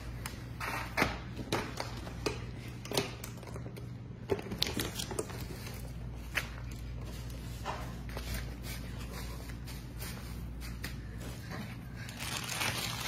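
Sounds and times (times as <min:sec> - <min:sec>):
salad leaves rustling: 0:12.0 - 0:13.0.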